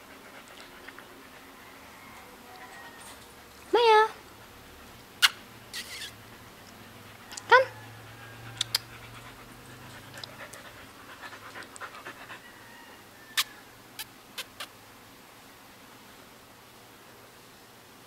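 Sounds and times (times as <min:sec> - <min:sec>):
faint dog sounds: 0:00.0 - 0:04.6, 0:05.7 - 0:14.8.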